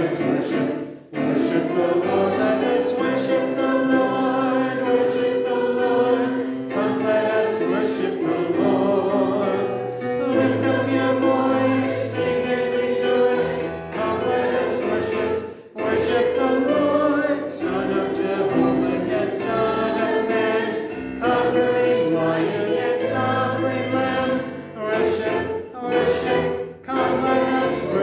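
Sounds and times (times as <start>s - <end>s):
congregation singing a hymn: 0.0s - 28.0s.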